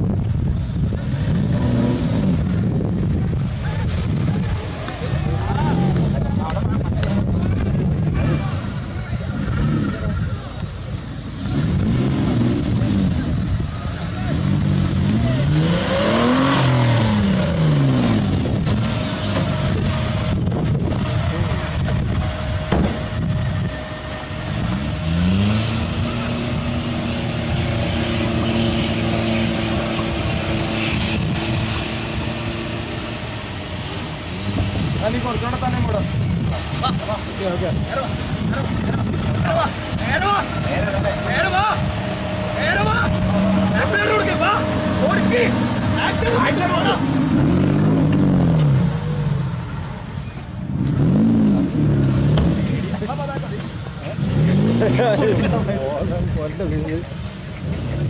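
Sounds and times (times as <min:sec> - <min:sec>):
off-road vehicle engine revving: 0:00.0 - 0:58.0.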